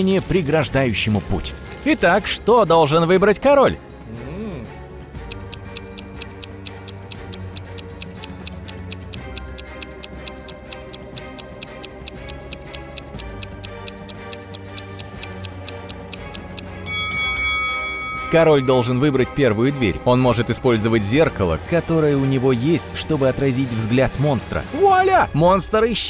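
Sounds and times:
light background music: 0:00.0 - 0:26.0
countdown clock ticking: 0:05.1 - 0:21.4
bright chime: 0:16.8 - 0:20.0.

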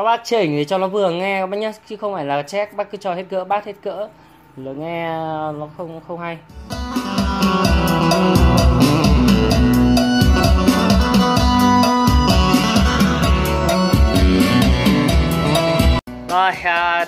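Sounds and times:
loud music with drums bass and guitar: 0:06.5 - 0:17.0.

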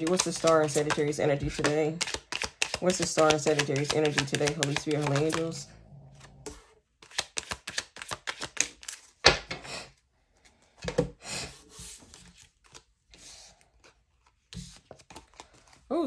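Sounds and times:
cards shuffled by hand: 0:00.0 - 0:05.6, 0:06.2 - 0:09.2, 0:11.8 - 0:15.9.

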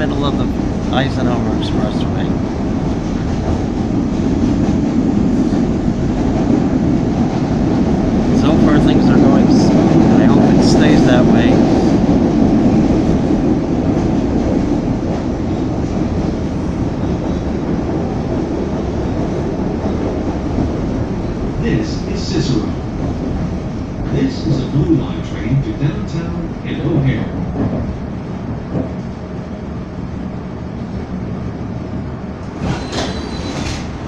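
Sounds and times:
train wheels rumbling on track: 0:00.0 - 0:34.0.

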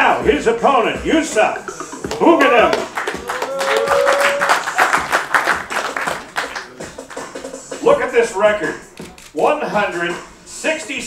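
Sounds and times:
music playing: 0:00.0 - 0:11.0
crowd clapping: 0:02.0 - 0:07.6.

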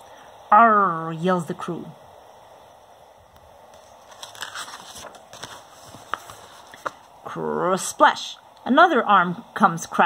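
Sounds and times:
paper page rustling: 0:03.7 - 0:07.1.

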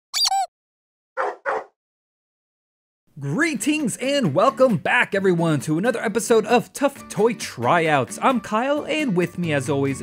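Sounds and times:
dog high call: 0:01.2 - 0:01.7
dog barking: 0:01.2 - 0:01.8.

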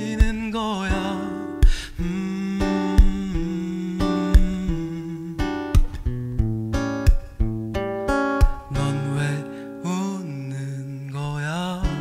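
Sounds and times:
man humming: 0:00.0 - 0:06.0
acoustic guitar strums: 0:00.0 - 0:12.0.

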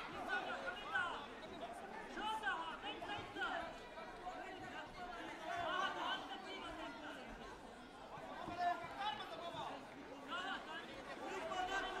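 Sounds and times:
chatter of many voices in a hall: 0:00.0 - 0:12.0.

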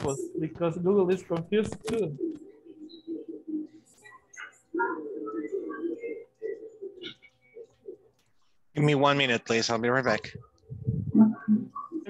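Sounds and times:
low cooing bird calls: 0:01.7 - 0:08.2, 0:10.4 - 0:12.0.

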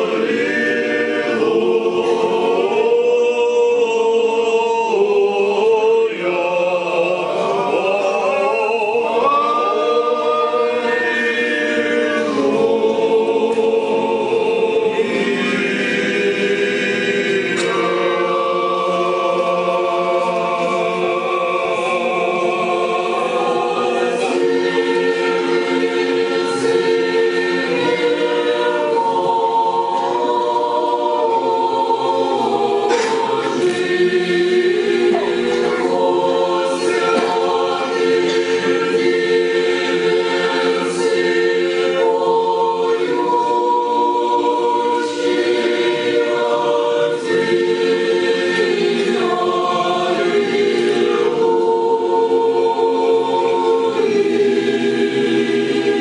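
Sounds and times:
choir singing a cappella chant: 0:00.0 - 0:56.0.

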